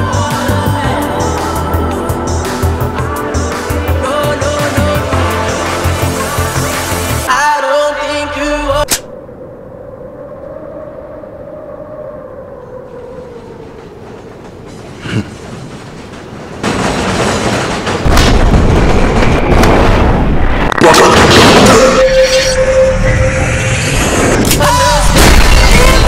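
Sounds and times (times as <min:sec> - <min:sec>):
sharp click: 0:08.9 - 0:09.1.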